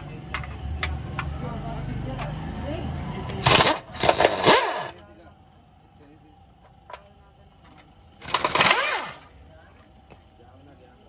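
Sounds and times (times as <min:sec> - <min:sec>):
pneumatic impact wrench bursts: 0:03.3 - 0:05.0, 0:08.2 - 0:09.3.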